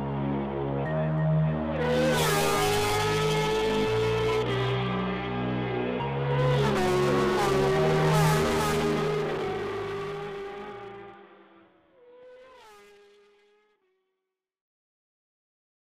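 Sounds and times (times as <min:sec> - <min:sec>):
racing engine revving: 0:01.8 - 0:05.2, 0:06.2 - 0:11.3.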